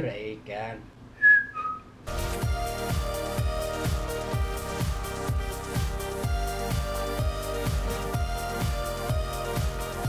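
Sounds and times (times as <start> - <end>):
whistled notes: 1.2 - 1.9
electronic music with steady beat: 2.1 - 10.0.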